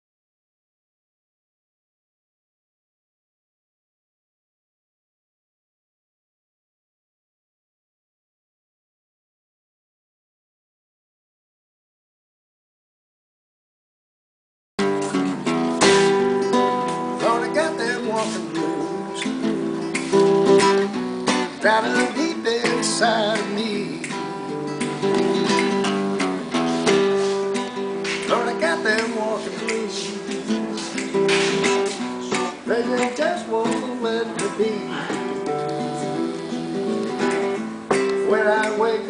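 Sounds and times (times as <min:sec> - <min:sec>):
acoustic guitar strumming: 0:14.8 - 0:39.0
man singing: 0:17.1 - 0:19.9, 0:21.5 - 0:25.2, 0:28.2 - 0:39.0.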